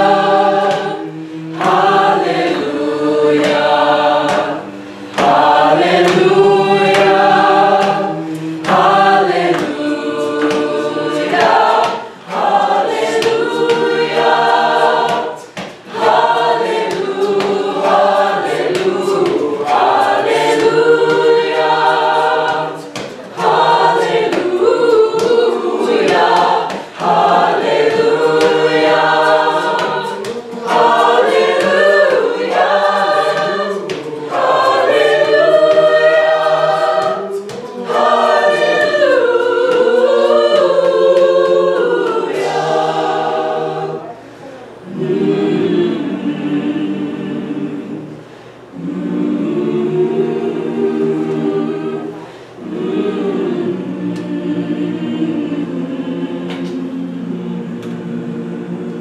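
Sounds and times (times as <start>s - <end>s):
choir singing a cappella: 0.0s - 59.0s.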